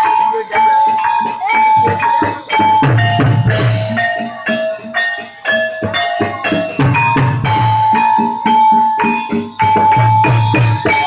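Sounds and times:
heavy drumming: 0.0 - 11.0
light percussion strokes: 0.0 - 11.0.

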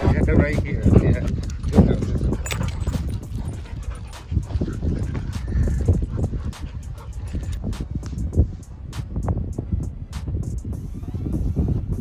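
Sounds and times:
low rumble: 0.0 - 12.0
dogs scuffling: 0.6 - 7.6
dogs growling: 0.8 - 7.6.

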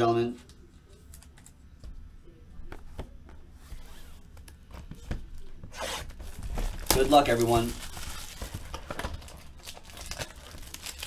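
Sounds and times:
shrink-wrap tearing: 5.7 - 11.0.

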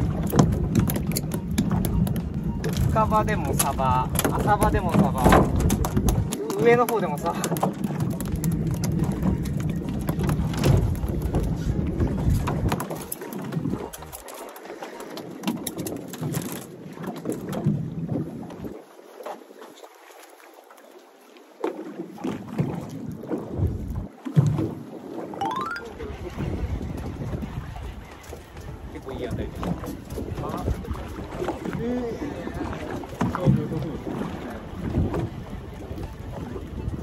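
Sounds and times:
wind buffeting microphone: 0.0 - 12.9, 22.6 - 25.2, 25.9 - 37.0
water moving around hull: 0.0 - 37.0.

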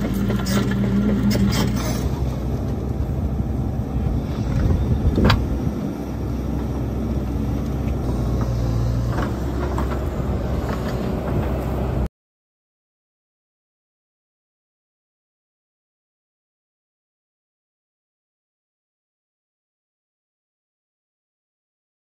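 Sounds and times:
excavator diesel engine running: 0.0 - 12.1.

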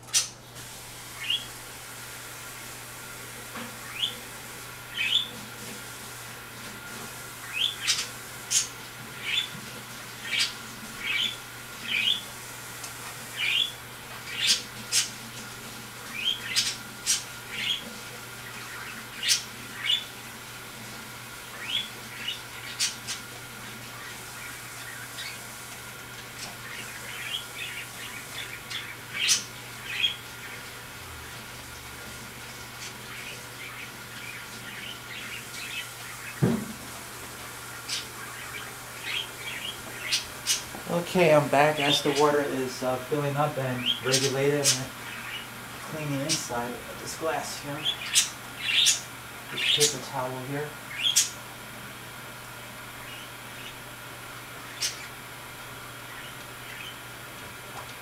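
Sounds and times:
steady low hum: 0.0 - 58.0
bird chirping: 1.2 - 1.5, 4.9 - 5.4, 10.2 - 12.2, 13.4 - 15.1, 26.6 - 30.6, 37.7 - 40.7, 47.7 - 50.0, 50.9 - 51.4.

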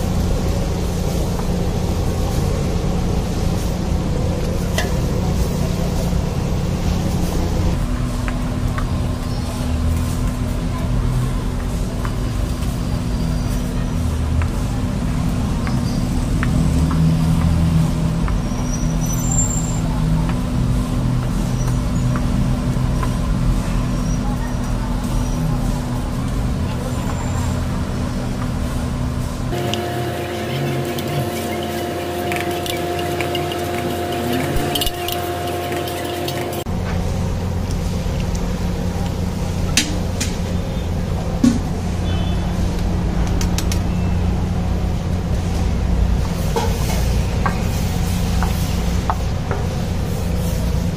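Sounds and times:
background voices: 29.6 - 36.7
metal spatula scraping griddle: 29.6 - 36.7.

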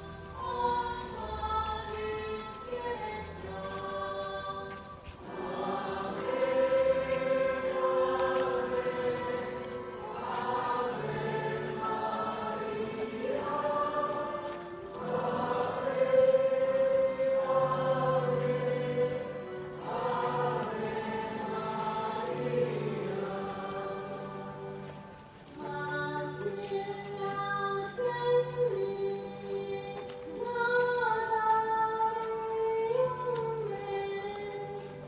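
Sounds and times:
choir singing a hymn: 0.0 - 27.3.

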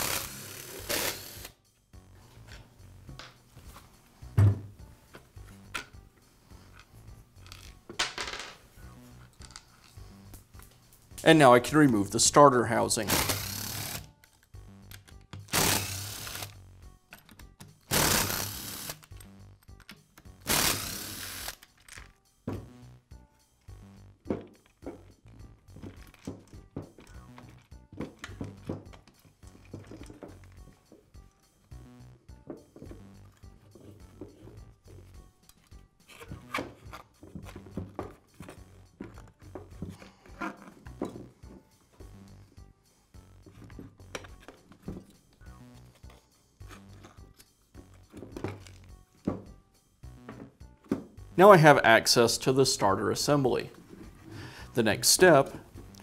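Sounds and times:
soft background music: 0.0 - 56.0
cordless drill running: 13.1 - 14.1, 15.5 - 16.5, 17.9 - 19.0, 20.5 - 21.6.

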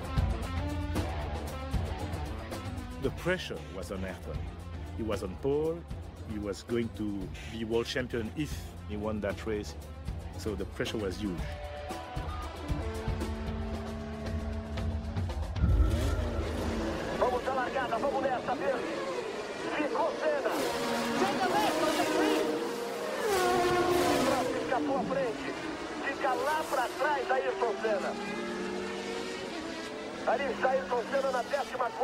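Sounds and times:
race car engines accelerating: 0.0 - 32.0.

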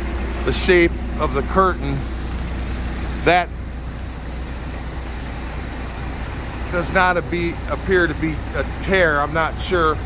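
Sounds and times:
truck diesel engine idling: 0.0 - 10.0.

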